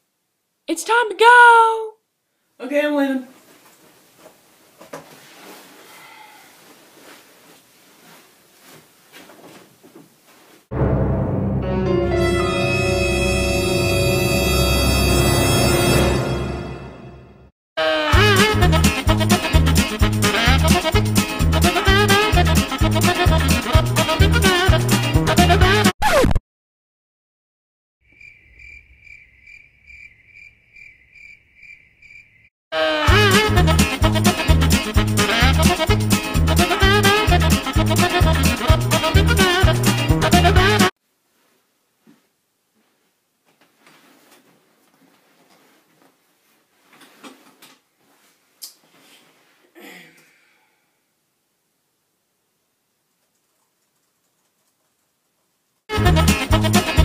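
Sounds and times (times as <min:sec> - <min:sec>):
soft rustles and light knocks: 0:03.3 - 0:05.9, 0:06.6 - 0:10.7, 0:41.3 - 0:49.7
loud music: 0:10.7 - 0:17.3, 0:18.0 - 0:25.9, 0:33.0 - 0:40.9, 0:55.9 - 0:57.0
cricket chirping: 0:28.0 - 0:32.5.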